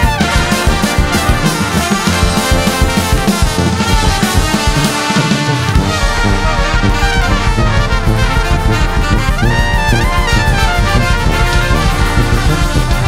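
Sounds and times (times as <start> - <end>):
brass band playing funk: 0.0 - 13.0
horn line sweeping to high note: 0.0 - 13.0.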